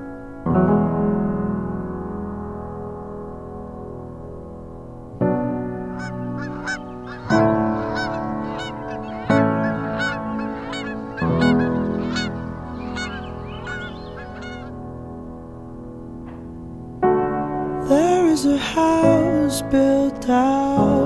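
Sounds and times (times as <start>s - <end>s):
sustained music chords: 5.4s - 16.2s
geese honking: 6.0s - 14.7s.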